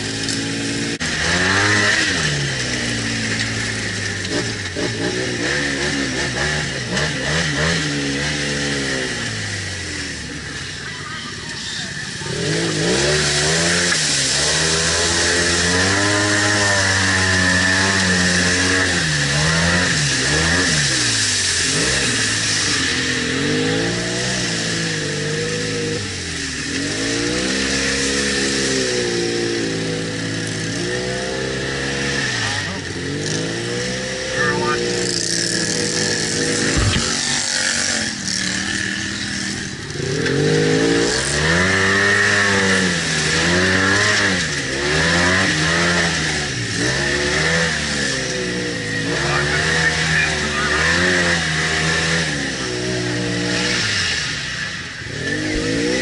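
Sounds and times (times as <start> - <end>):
atv engine revving: 0.0 - 56.0
high whine: 34.0 - 39.7.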